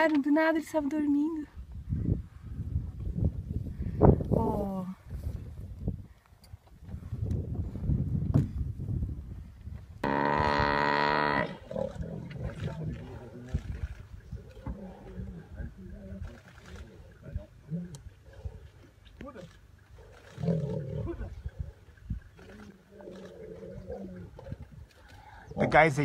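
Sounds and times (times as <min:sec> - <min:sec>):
drawn-out low call: 0:10.0 - 0:25.8
low bellows and growls: 0:10.0 - 0:26.0.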